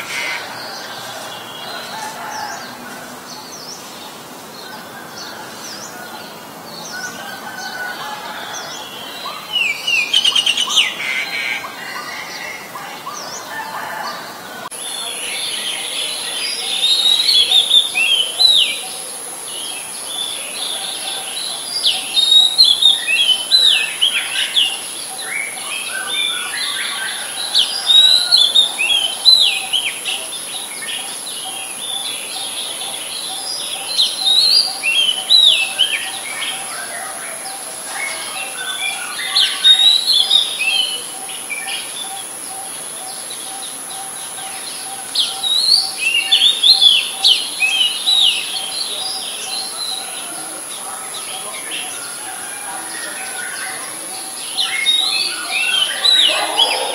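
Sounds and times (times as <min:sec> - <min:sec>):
robin singing: 0:08.2 - 0:13.6, 0:14.6 - 0:56.9.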